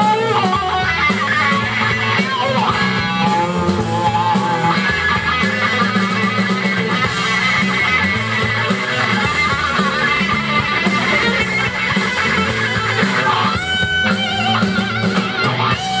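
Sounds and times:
bass guitar: 0.0s - 16.0s
drums and cymbals: 0.0s - 16.0s
electric guitar lead: 0.0s - 16.0s.

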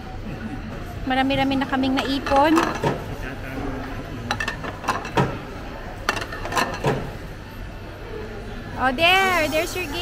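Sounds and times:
plates clinking into slot: 2.1s - 3.1s, 4.2s - 7.2s.

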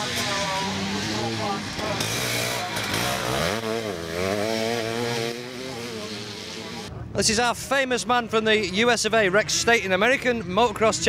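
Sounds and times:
motocross bike engine revving: 0.0s - 6.9s.

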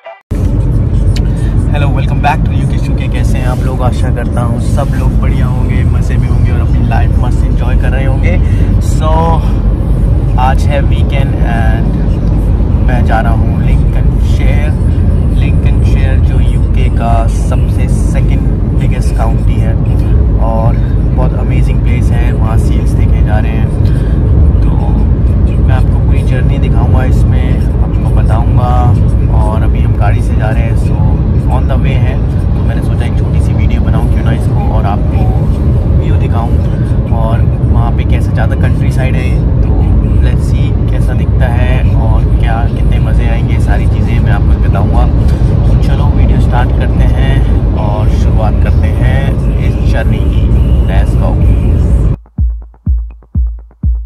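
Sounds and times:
car road and engine rumble: 0.2s - 52.3s
man talking: 1.2s - 9.7s, 10.3s - 51.8s.

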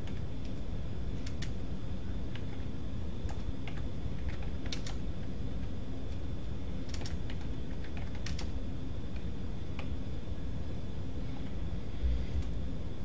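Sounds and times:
steady low hum: 0.0s - 13.0s
keyboard typing: 1.2s - 1.6s, 2.3s - 5.0s, 6.8s - 8.6s.

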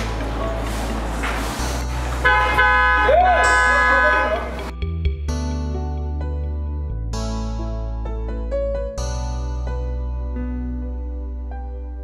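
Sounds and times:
loud horn honk: 2.2s - 4.7s.

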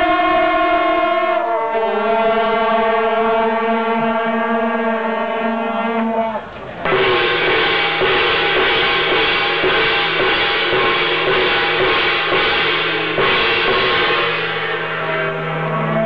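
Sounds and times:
brass horns holding a chord: 0.0s - 16.0s
large gong struck: 0.0s - 16.0s.

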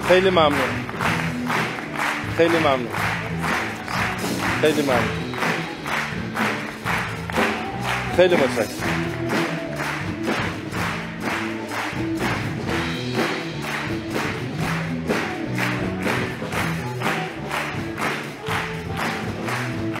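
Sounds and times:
audience clapping in time: 0.0s - 20.0s.

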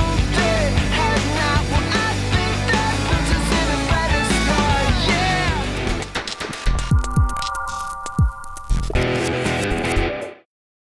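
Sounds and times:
rock music: 0.0s - 10.4s.

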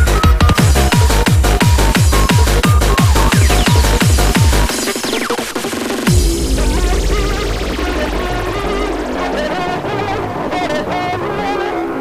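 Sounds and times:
deep bass: 0.0s - 5.1s, 6.0s - 10.8s
hardcore dance music: 0.0s - 11.9s.

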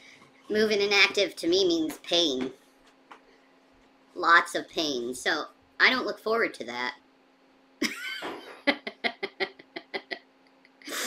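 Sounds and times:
person chuckling: 7.8s - 11.0s.

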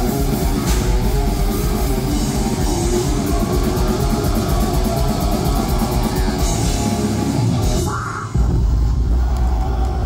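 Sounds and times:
metal band playing: 0.0s - 9.1s.

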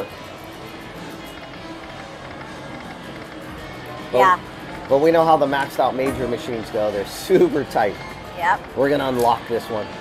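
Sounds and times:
background music overhead: 0.0s - 10.0s.

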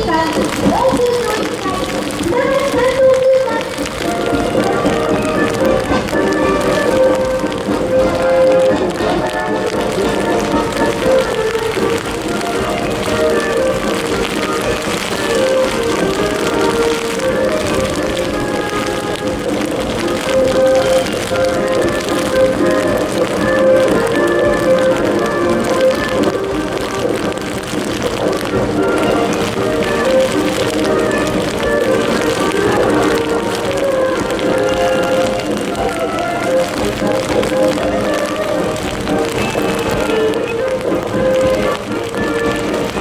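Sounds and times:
heavy rain: 0.0s - 43.0s
military band playing march: 0.0s - 43.0s.

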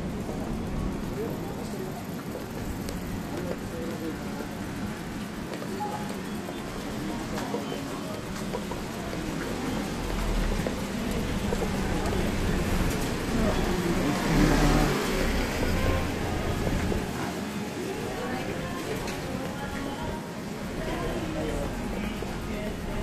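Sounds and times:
vehicle engine rumble: 0.0s - 17.2s
indistinct voices of passers-by: 0.0s - 23.0s
traffic noise: 0.0s - 23.0s.

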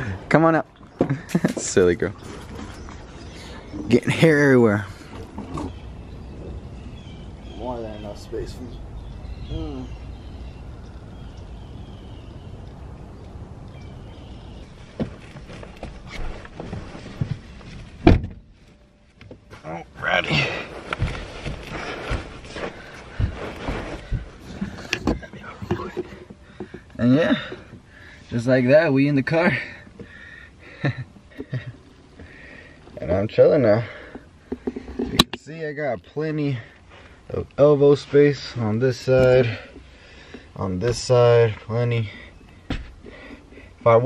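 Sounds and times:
sleeping bag rustling and creaking: 1.6s - 3.8s, 14.1s - 26.4s
limbs thumping against car seats: 20.6s - 26.8s.

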